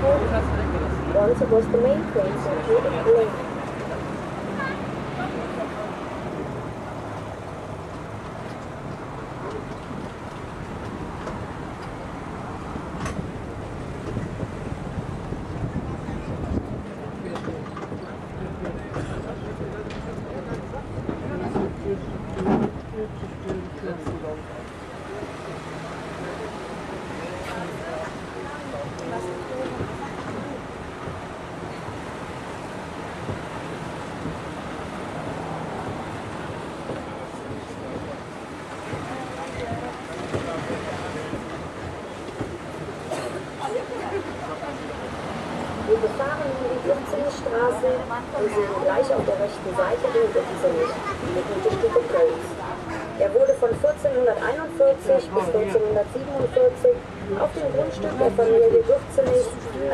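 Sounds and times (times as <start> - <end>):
road train running: 0.0 - 59.9
street traffic: 0.0 - 59.9
wind rumbling on microphone: 0.0 - 59.9.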